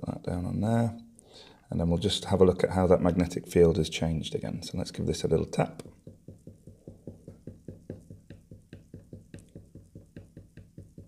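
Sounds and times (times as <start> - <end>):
rapid light taps on board: 5.8 - 11.0.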